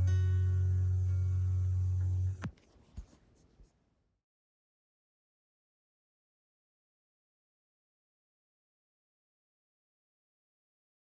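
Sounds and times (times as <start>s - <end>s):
acoustic guitar chord ringing: 0.0s - 2.4s.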